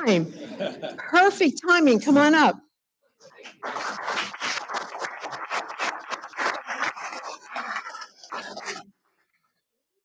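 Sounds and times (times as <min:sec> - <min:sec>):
audience applauding: 0:03.5 - 0:08.7.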